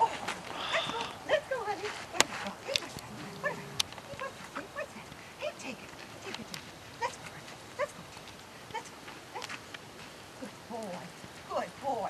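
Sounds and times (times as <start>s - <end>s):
puppy growling and yipping: 2.8s - 4.5s.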